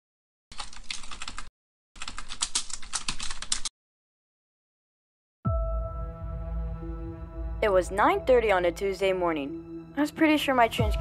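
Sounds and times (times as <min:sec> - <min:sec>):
computer keyboard typing: 0:00.5 - 0:03.7.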